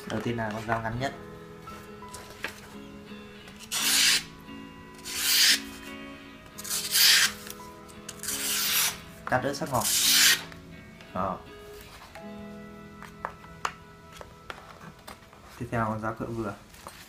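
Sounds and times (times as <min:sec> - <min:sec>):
knife slicing through paper: 0:03.6 - 0:04.3, 0:05.0 - 0:05.8, 0:06.6 - 0:07.6, 0:08.2 - 0:09.0, 0:09.8 - 0:10.5.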